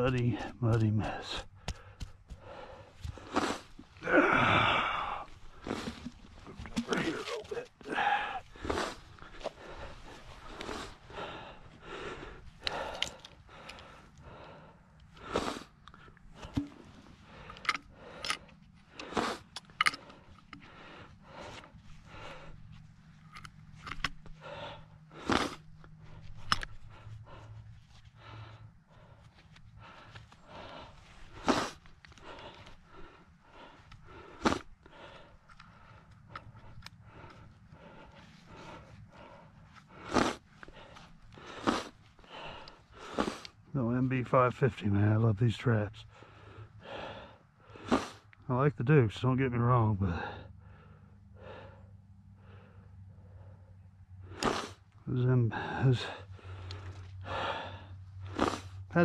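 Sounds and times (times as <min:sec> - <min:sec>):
tool chopping muddy soil: 0:54.4 - 0:54.7.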